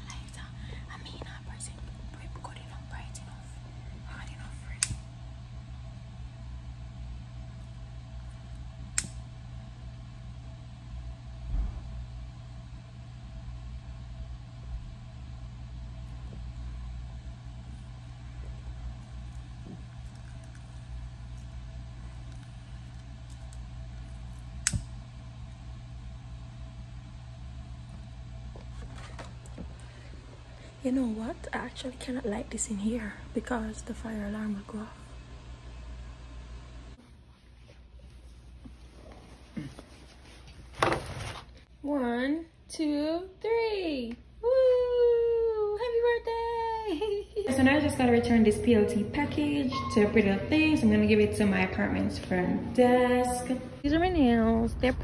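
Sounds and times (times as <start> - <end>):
soft whispering: 0.0 - 5.0
low hum: 0.0 - 40.4, 44.2 - 55.0
lighter clicks: 8.9 - 9.2.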